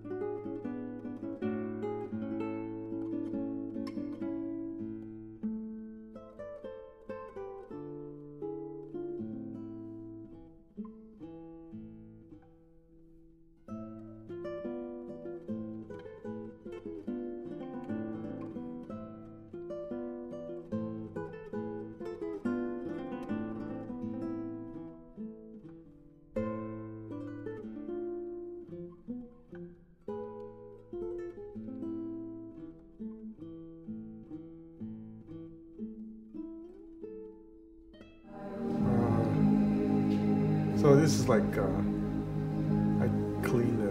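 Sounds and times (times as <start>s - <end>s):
acoustic guitar plucked notes: 0.0s - 37.2s, 38.0s - 43.9s.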